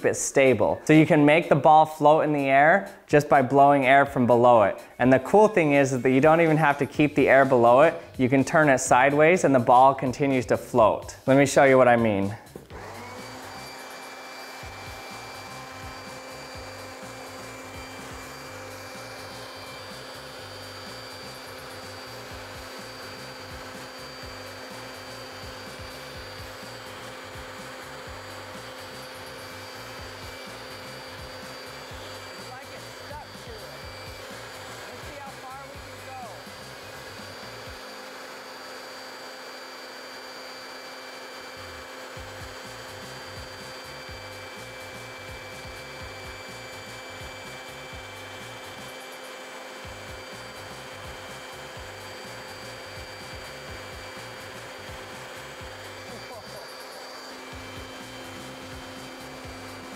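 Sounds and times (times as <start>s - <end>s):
leaf blower running: 0.0s - 59.9s.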